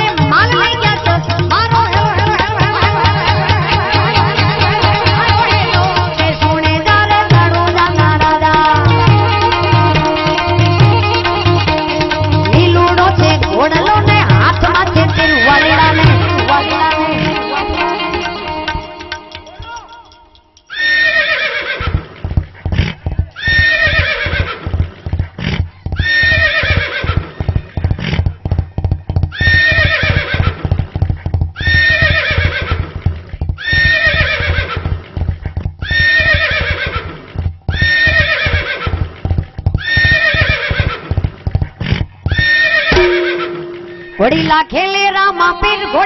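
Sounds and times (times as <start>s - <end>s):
fast tabla rhythm: 0.0s - 20.7s, 21.8s - 46.0s
horse whinny: 15.1s - 16.0s, 20.7s - 30.8s, 31.6s - 35.1s, 35.8s - 44.2s.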